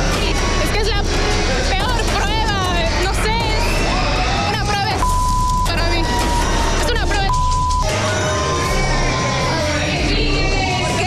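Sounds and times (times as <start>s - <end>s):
woman speaking: 4.5s - 7.5s
high-pitched censor bleep: 5.0s - 5.8s, 7.3s - 8.0s.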